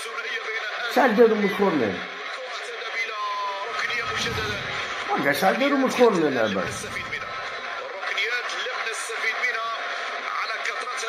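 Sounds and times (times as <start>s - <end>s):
man talking: 0.0s - 2.0s, 3.0s - 11.0s
noisy background: 0.0s - 11.0s.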